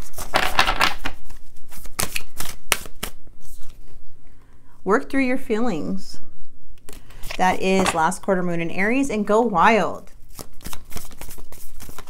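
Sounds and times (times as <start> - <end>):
cards being shuffled: 0.0 - 4.0, 10.2 - 12.0
card flicks and slaps: 1.9 - 3.2.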